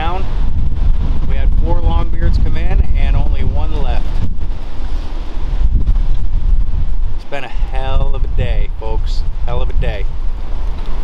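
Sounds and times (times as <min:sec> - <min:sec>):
man talking: 0:00.0 - 0:00.3, 0:01.2 - 0:04.2, 0:07.2 - 0:10.1
wind buffeting microphone: 0:00.0 - 0:11.0.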